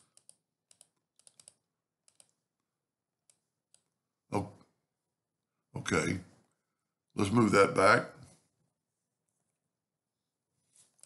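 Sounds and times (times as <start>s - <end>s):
keyboard and mouse clicks: 0.0s - 2.4s, 3.2s - 4.0s.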